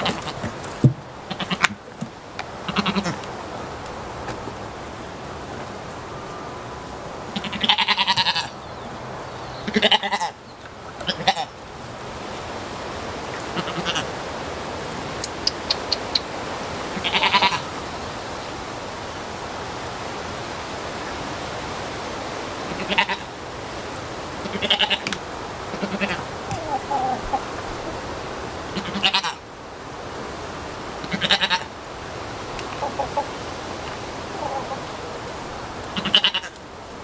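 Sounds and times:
steady background hiss: 0.0s - 37.0s
goats bleating: 1.2s - 1.8s, 2.6s - 3.2s, 7.3s - 8.6s, 9.6s - 10.4s, 11.0s - 11.5s, 13.4s - 14.1s, 16.9s - 17.7s, 22.7s - 23.3s, 24.4s - 25.1s, 25.7s - 27.5s, 28.7s - 29.4s, 31.1s - 31.7s, 35.9s - 36.6s.

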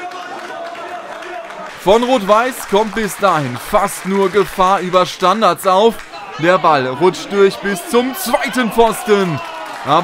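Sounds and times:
male commentator speaking: 1.8s - 10.0s
distant players and spectators calling: 5.6s - 10.0s.

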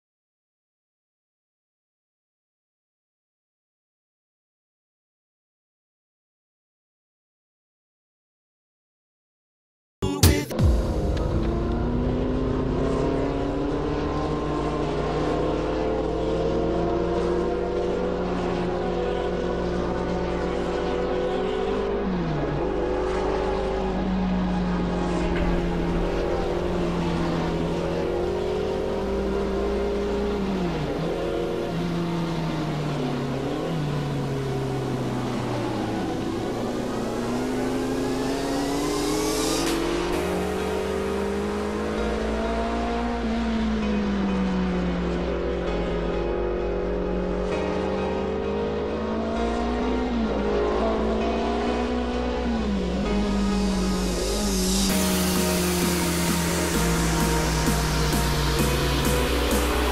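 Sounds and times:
background music with low pulse: 10.0s - 59.9s
race car engines passing: 11.0s - 59.9s.

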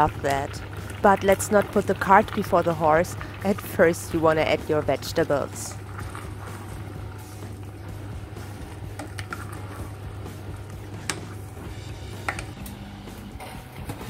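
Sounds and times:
vegetables stirred in thick sauce: 5.7s - 9.9s.

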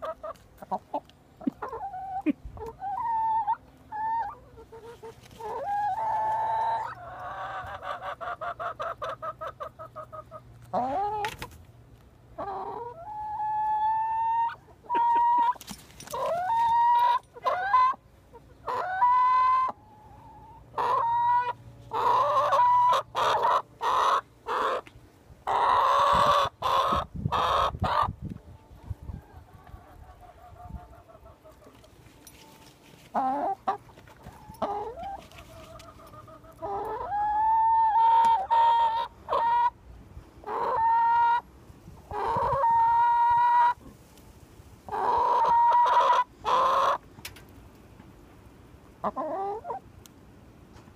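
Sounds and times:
hens squawking: 0.0s - 11.5s, 12.4s - 28.1s, 33.1s - 39.8s, 40.4s - 41.5s, 42.1s - 43.8s, 44.9s - 47.0s, 49.0s - 49.8s.

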